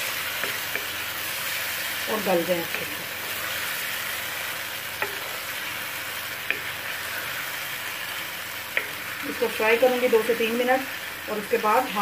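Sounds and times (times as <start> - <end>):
vegetables sizzling in oil: 0.0 - 12.0
spatula knocking against pan: 5.0 - 5.3.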